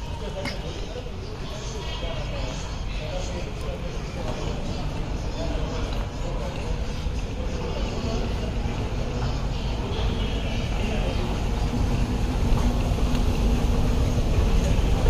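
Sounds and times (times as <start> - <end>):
faint indistinct voices: 0.0 - 15.0.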